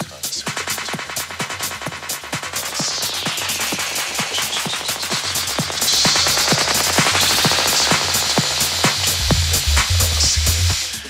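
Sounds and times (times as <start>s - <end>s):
bass: 0.0s - 11.0s
electronic house music: 0.0s - 11.0s
hissing noise sweep: 0.0s - 11.0s
rapid percussion hits: 0.0s - 11.0s.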